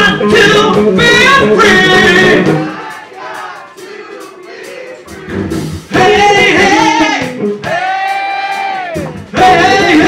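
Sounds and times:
electric guitar: 0:00.0 - 0:02.8, 0:05.3 - 0:10.0
bass guitar: 0:00.0 - 0:03.8, 0:04.6 - 0:10.0
drums: 0:00.0 - 0:10.0
person singing with vibrato: 0:00.0 - 0:10.0.

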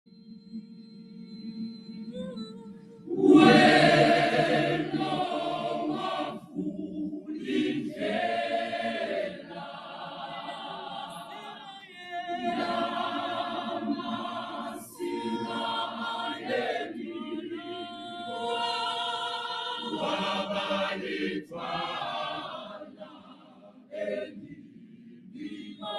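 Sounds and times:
gospel choir singing a cappella: 0:00.9 - 0:25.9.

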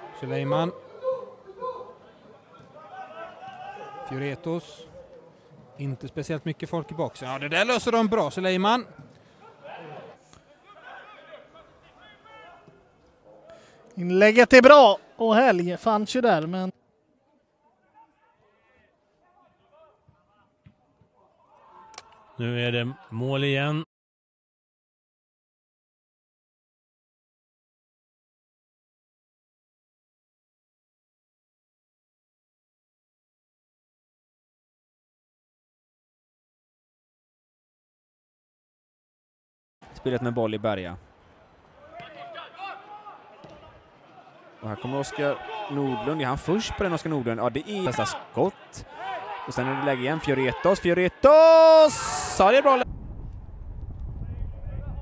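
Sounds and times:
players shouting: 0:00.0 - 0:05.2, 0:41.7 - 0:52.9.

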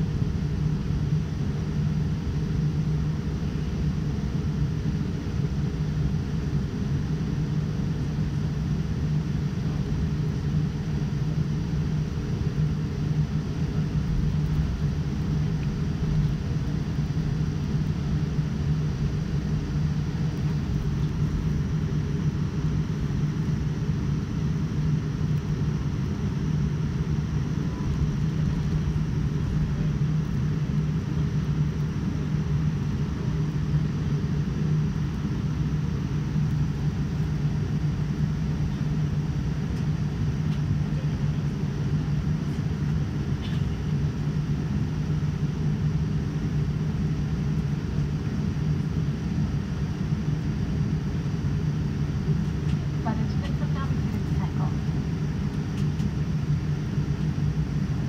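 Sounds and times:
airliner cabin engine rumble: 0:00.0 - 0:58.0.

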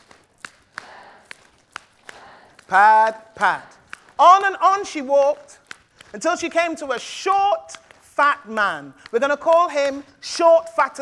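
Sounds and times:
audience chanting in unison: 0:00.7 - 0:03.9.

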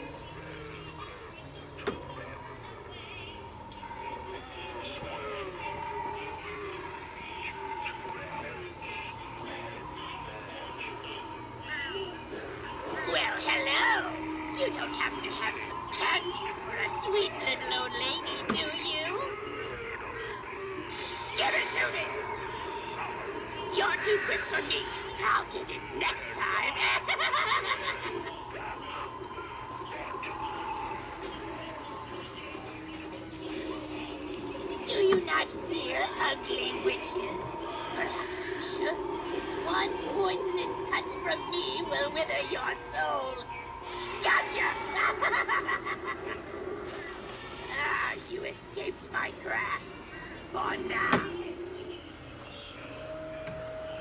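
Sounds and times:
indistinct voices: 0:00.0 - 0:54.0
steady high-pitched tone: 0:00.0 - 0:54.0.

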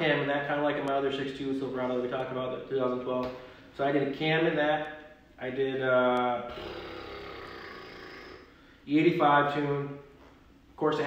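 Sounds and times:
man speaking: 0:00.0 - 0:06.5.

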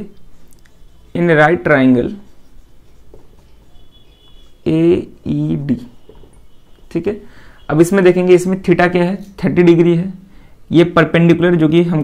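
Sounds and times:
marker scratching on whiteboard: 0:00.0 - 0:06.9.

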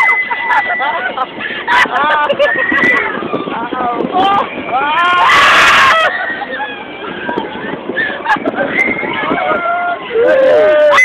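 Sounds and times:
riders laughing and shrieking: 0:00.0 - 0:11.0.

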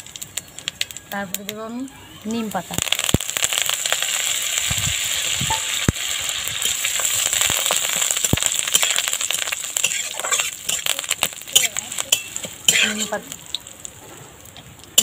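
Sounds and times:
leaves sizzling in hot oil: 0:00.0 - 0:15.0
metal spatula scraping pan: 0:09.8 - 0:10.9, 0:11.6 - 0:13.2.

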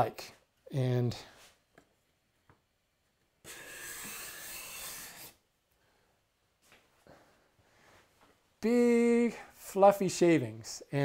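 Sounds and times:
card scraper on wood: 0:03.5 - 0:05.4.

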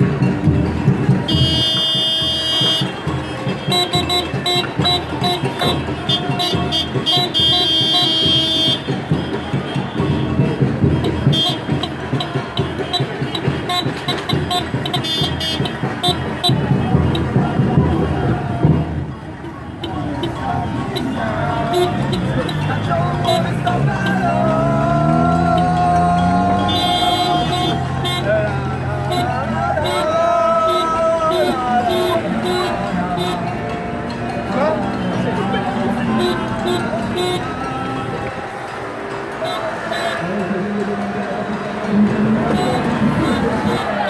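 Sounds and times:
samba drumming: 0:00.0 - 0:33.5, 0:34.5 - 0:44.0.

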